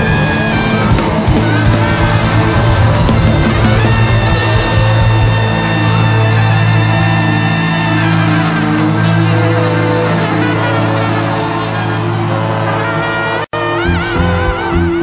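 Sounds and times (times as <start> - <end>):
loud low bass note: 0.0 - 13.0
rock band playing: 0.0 - 15.0.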